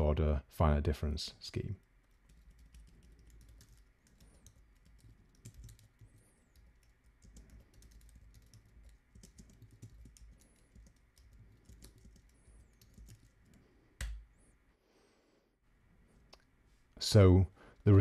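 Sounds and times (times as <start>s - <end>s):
typing on computer keyboard: 1.8s - 14.2s.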